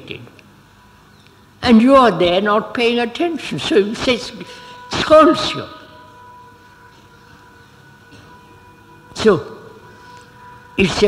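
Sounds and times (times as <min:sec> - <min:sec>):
low steady background hiss: 0:00.0 - 0:11.0
faint steady tones: 0:00.3 - 0:11.0.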